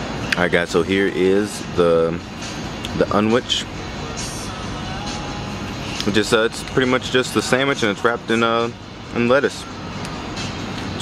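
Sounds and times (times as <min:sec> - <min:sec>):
faint music: 0:00.0 - 0:11.0
steady background noise: 0:00.0 - 0:11.0.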